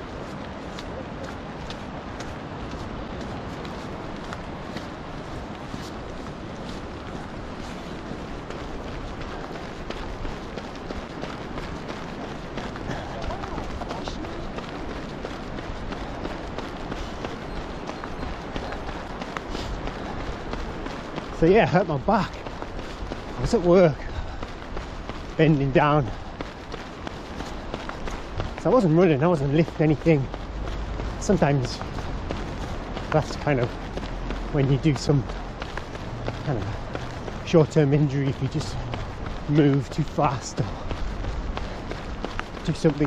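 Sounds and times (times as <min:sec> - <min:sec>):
footfalls on tarmac: 0:00.0 - 0:43.0
wind on microphone: 0:00.0 - 0:43.0
person breathing: 0:19.5 - 0:19.8, 0:24.0 - 0:24.6.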